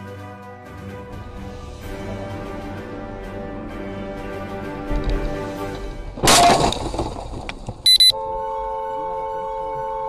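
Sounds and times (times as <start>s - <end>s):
background music: 0.0s - 6.8s, 8.0s - 10.0s
windshield crash: 6.2s - 7.8s
short high electronic beep: 7.9s - 8.1s.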